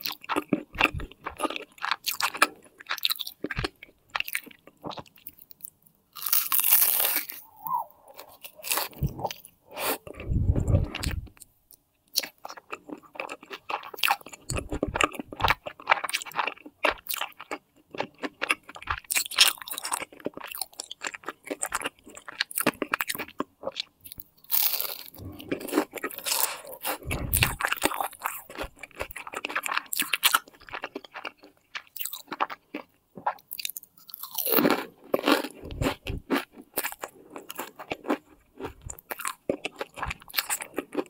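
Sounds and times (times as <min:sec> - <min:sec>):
crisp pastry chewing: 0:00.0 - 0:11.5, 0:12.1 - 0:41.0.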